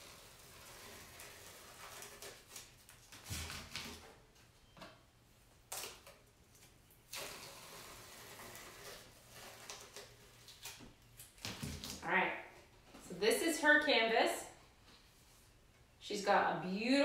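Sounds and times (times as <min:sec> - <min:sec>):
tape peeling rasp: 0:00.0 - 0:04.2, 0:07.1 - 0:10.9.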